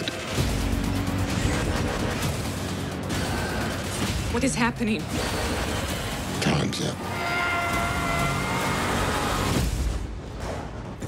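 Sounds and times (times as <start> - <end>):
trailer music: 0.0 - 11.0.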